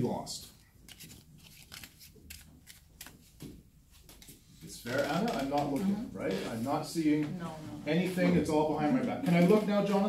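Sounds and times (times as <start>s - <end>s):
playing cards shuffling: 0.4s - 5.8s.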